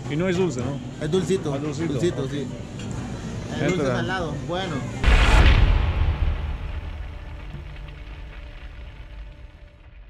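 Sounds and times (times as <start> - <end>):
deep cinematic boom rumble: 5.0 - 10.0.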